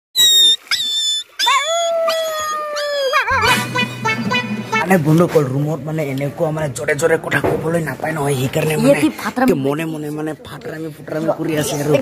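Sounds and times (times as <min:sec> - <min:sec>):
dog whining and howling: 0:00.2 - 0:03.5.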